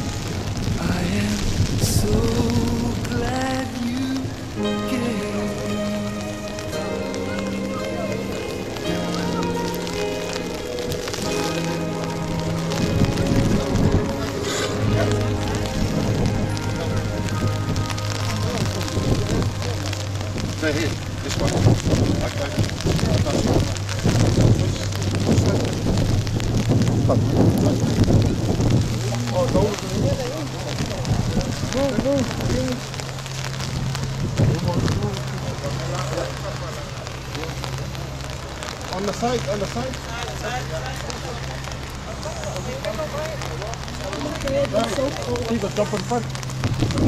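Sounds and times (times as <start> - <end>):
people's voices: 0.0 - 47.0
rain pattering: 0.0 - 47.0.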